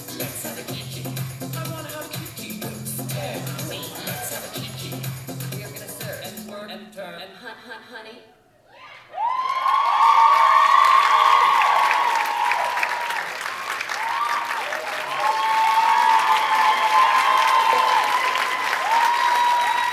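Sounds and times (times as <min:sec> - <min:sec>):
whoops and cheers: 0:08.7 - 0:19.9
audience applause: 0:09.2 - 0:19.9.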